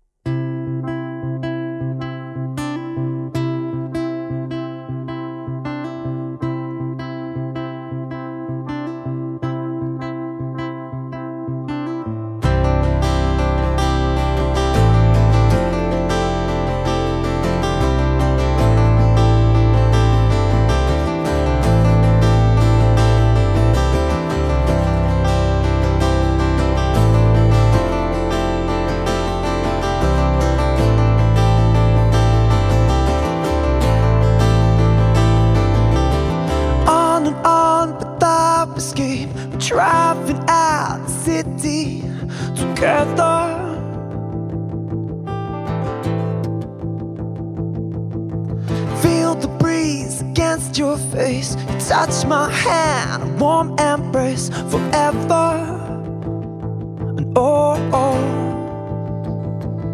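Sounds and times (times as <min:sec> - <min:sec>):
picked acoustic guitar: 0:00.2 - 0:59.9
band with strummed guitar: 0:02.3 - 0:59.9
deep bass notes: 0:12.2 - 0:39.6.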